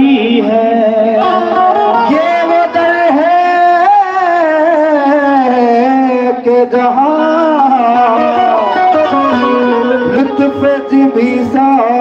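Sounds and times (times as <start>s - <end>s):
qawwali music: 0.0s - 12.0s.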